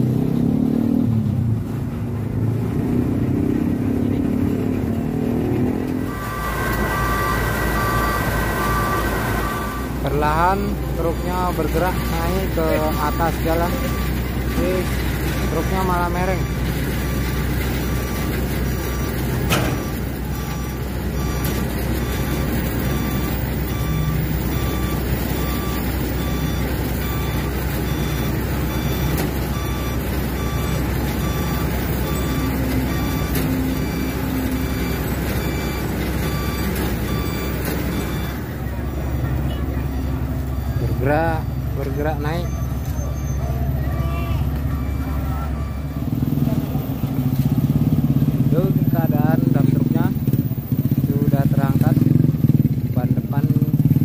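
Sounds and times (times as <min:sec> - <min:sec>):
engine revving: 0:00.0 - 0:43.2, 0:44.4 - 0:54.0
diesel truck engines running: 0:00.0 - 0:54.0
truck reversing alarm beeping: 0:02.4 - 0:54.0
voices: 0:06.0 - 0:24.0, 0:25.4 - 0:53.9.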